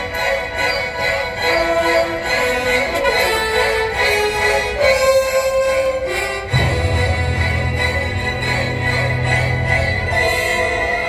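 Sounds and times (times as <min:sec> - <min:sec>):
orchestra playing long notes: 0:00.0 - 0:11.0.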